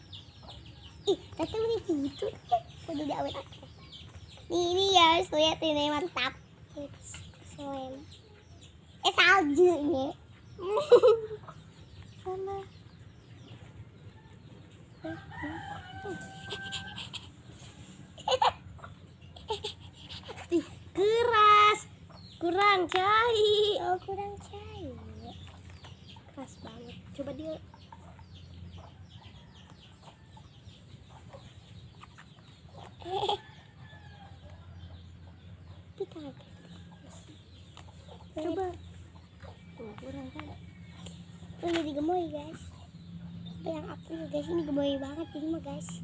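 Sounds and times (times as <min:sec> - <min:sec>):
high peeping chicks: 0:00.0 - 0:04.8, 0:05.6 - 0:23.3, 0:23.9 - 0:46.0
chickens clucking: 0:00.0 - 0:46.0
rooster crowing: 0:15.0 - 0:17.1.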